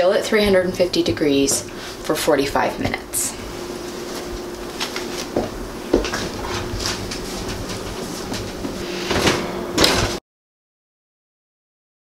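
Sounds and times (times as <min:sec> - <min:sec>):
steady low hum: 0:00.0 - 0:10.2
oven door closing clatter: 0:08.5 - 0:10.2.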